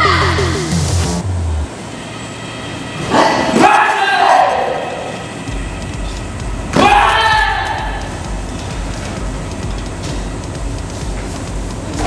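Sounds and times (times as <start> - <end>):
fighters yelling: 3.1 - 5.1, 6.7 - 8.2.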